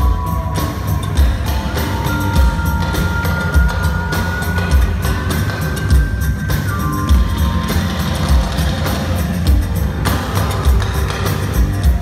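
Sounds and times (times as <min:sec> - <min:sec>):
heavy drum beat: 0:00.0 - 0:12.0.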